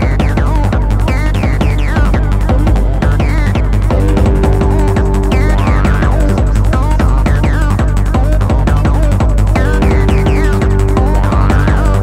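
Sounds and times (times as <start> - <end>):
fast electronic dance music: 0.0 - 12.0
pounding kick drum: 0.0 - 12.0.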